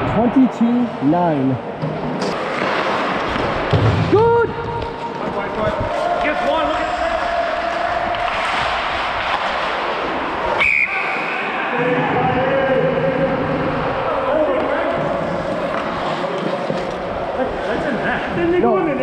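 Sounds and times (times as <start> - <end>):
players shouting: 4.0 - 16.4.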